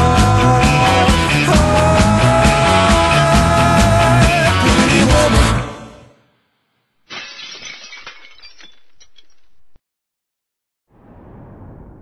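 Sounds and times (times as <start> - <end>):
glass breaking crash: 7.1 - 9.8.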